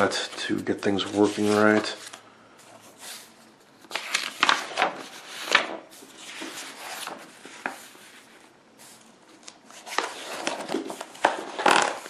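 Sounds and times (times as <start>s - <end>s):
paper pages rustling: 0.0s - 12.0s
page swishing: 0.9s - 2.2s.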